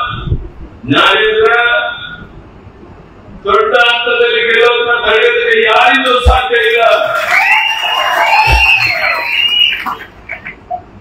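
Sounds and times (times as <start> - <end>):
man calling over loudspeaker: 0.0 - 2.3, 3.4 - 7.2.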